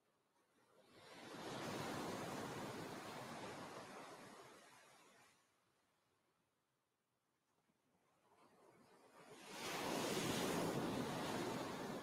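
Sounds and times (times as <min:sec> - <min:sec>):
ocean wave washing on beach: 0:00.8 - 0:05.5, 0:08.4 - 0:12.0.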